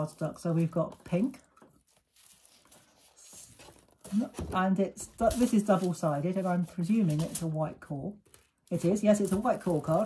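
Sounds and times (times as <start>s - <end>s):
rustle of cardstock sheets: 0.0s - 7.6s.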